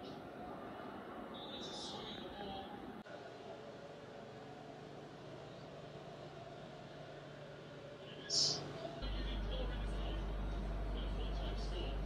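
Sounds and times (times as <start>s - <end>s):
low constant hum: 0.0s - 12.0s.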